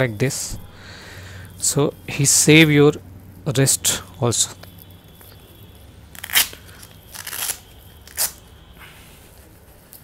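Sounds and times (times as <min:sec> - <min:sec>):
velcro strap ripping: 0:06.1 - 0:08.4.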